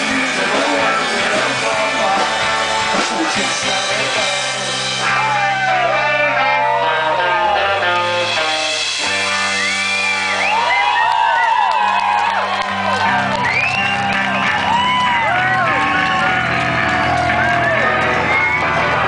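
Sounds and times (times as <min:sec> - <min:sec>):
high sliding guitar notes: 0:00.0 - 0:10.8
rock band playing loud: 0:00.0 - 0:19.0.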